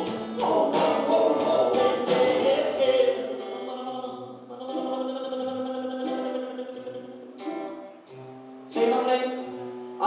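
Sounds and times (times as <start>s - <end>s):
rock band holding a chord: 0.0s - 3.6s.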